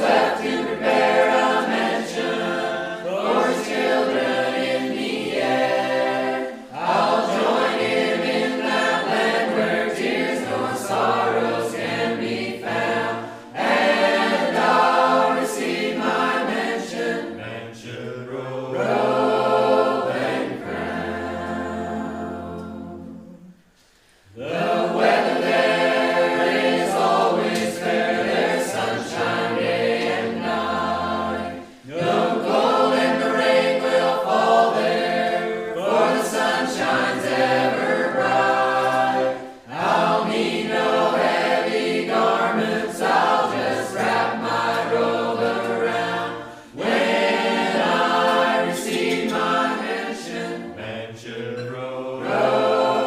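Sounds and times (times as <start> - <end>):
choir singing a cappella: 0.0 - 53.0.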